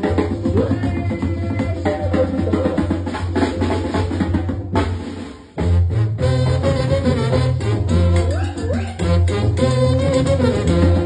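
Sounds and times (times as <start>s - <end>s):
drums and cymbals: 0.0s - 11.0s
tuba bass line: 5.6s - 11.0s.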